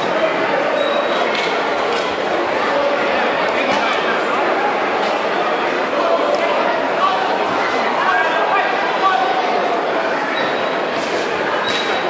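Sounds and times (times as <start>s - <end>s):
echoing crowd babble: 0.0s - 12.0s.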